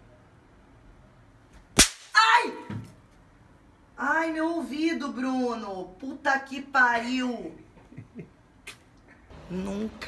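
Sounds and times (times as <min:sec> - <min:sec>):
sharp crack: 0:01.6 - 0:02.7.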